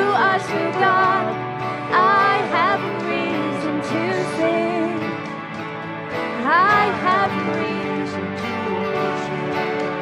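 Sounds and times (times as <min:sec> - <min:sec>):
person singing: 0:00.0 - 0:05.3, 0:06.4 - 0:10.0
acoustic guitar: 0:00.0 - 0:10.0
keyboard chords: 0:00.0 - 0:10.0.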